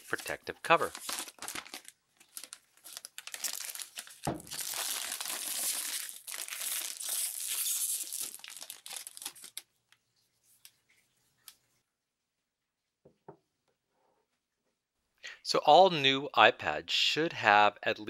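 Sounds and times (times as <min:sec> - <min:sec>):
plastic wrap peeling and crinkling: 0:00.0 - 0:09.8.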